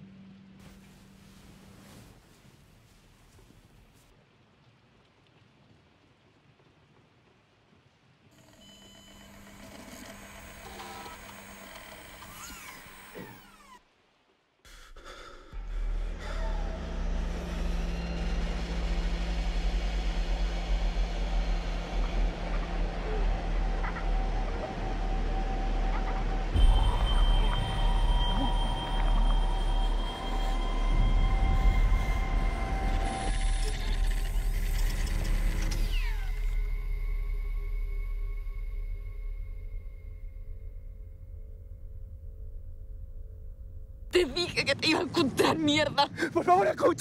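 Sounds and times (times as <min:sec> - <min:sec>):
dark cinematic drone: 0:14.7 - 0:45.4.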